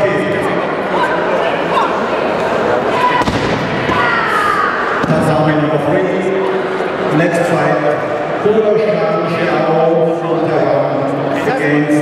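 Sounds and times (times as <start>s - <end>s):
chatter in sports hall: 0.0s - 12.0s.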